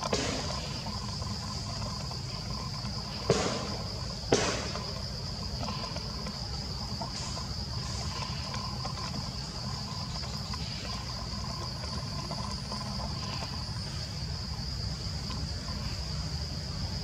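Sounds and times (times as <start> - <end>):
insects droning: 0.0 - 17.0.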